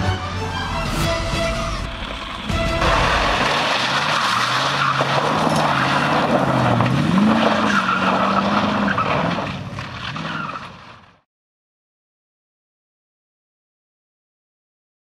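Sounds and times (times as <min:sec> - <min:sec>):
tyres scrabbling on gravel: 0:02.1 - 0:11.1.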